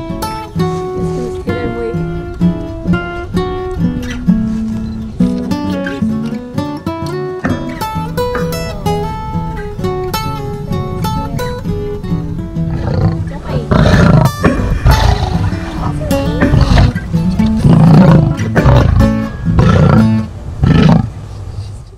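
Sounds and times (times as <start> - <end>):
plucked acoustic guitar music: 0.0 - 20.6
lioness roaring grunts: 12.7 - 21.1.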